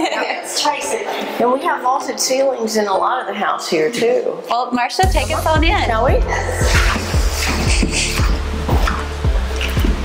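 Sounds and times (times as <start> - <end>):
kick drum thumps: 5.0 - 10.0
low bass line: 5.0 - 10.0.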